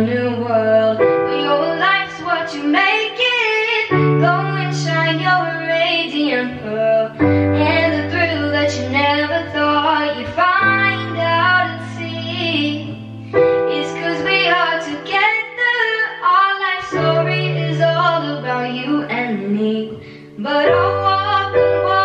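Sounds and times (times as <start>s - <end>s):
woman singing pop ballad: 0.0s - 22.0s.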